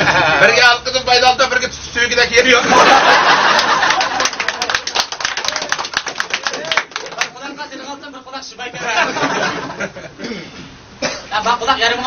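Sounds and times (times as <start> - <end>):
people laughing: 0.0 - 0.6, 2.6 - 4.9, 8.7 - 10.2
scattered hand claps: 3.5 - 7.4.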